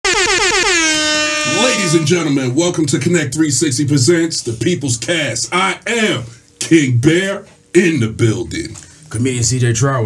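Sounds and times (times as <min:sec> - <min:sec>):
air horn blasts: 0:00.0 - 0:02.4
man speaking: 0:01.4 - 0:10.0.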